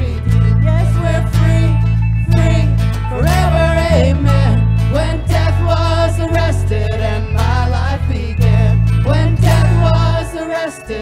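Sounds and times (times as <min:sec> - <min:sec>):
acoustic guitar strumming: 0:00.0 - 0:11.0
bass guitar: 0:00.0 - 0:11.0.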